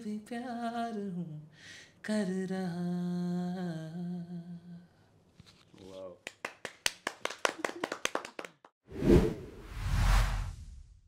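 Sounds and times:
people clapping: 6.1 - 8.7
whoosh sound effect: 8.9 - 11.0.

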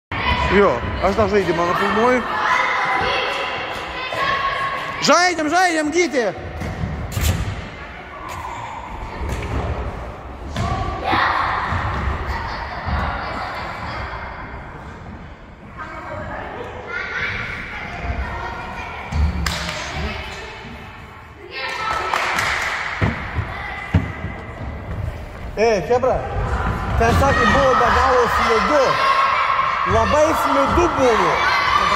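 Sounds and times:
children shouting: 1.8 - 5.0, 26.4 - 31.9.

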